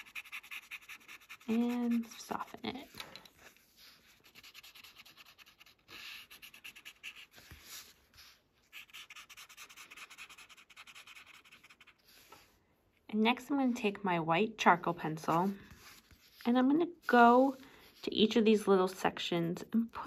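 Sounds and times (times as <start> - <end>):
paper stump rubbing on paper: 0.0 - 2.8.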